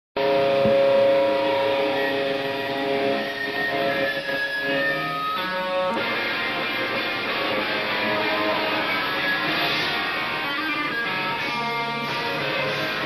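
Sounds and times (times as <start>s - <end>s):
ringing electric guitar tones: 0.2s - 13.0s
strummed guitar: 0.2s - 13.0s.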